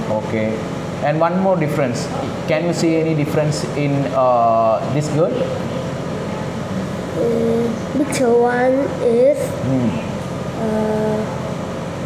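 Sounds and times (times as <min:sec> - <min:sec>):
room hum: 0:00.0 - 0:12.0
child saying uhh: 0:07.2 - 0:10.0, 0:10.6 - 0:11.4.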